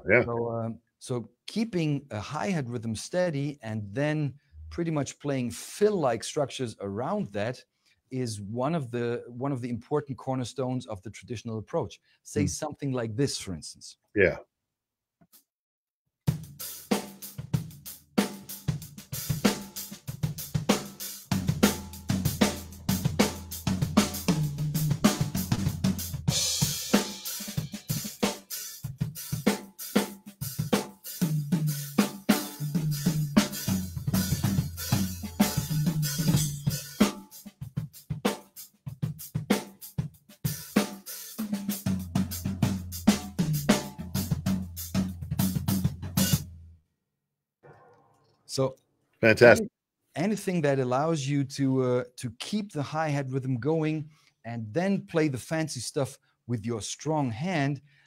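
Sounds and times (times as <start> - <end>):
drum fills on snare and toms: 16.3 - 46.4
hi-hat rhythm: 16.6 - 46.4.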